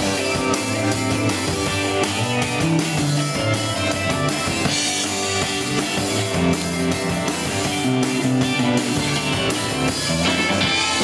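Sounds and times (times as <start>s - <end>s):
drum kit: 0.0s - 11.0s
electric guitar: 0.0s - 11.0s.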